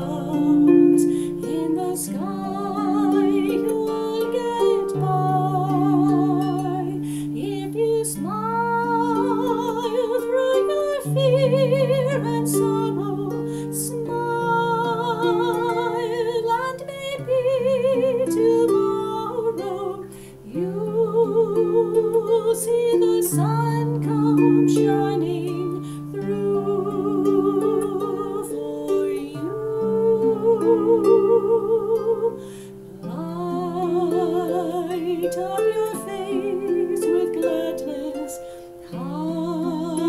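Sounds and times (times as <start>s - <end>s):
harp plucking: 0.0s - 40.0s
woman singing with vibrato: 0.0s - 40.0s.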